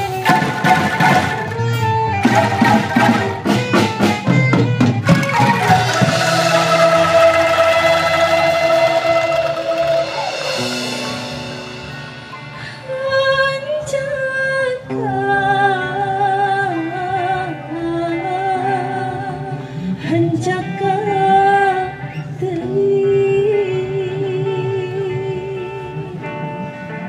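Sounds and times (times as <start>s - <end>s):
bamboo ensemble with drums: 0.0s - 12.8s
woman singing: 12.7s - 26.5s.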